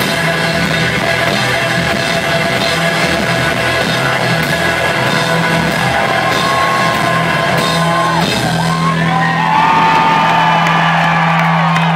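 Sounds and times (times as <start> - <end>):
rock band holding a chord: 0.0 - 11.9
crowd whooping and yelling: 1.2 - 11.9.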